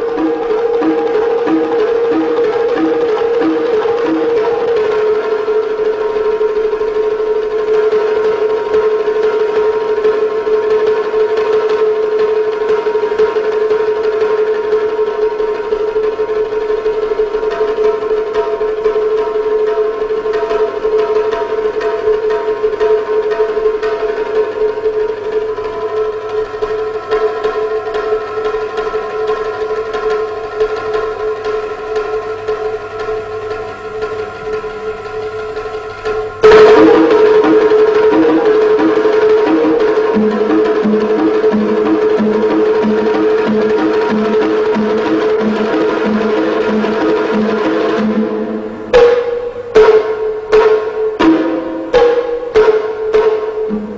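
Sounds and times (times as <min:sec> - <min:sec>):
steady held note: 0:00.0 - 0:05.8, 0:36.4 - 0:50.5, 0:51.2 - 0:53.9
drum head rubbed siren-like tone: 0:00.0 - 0:05.9, 0:36.4 - 0:49.6.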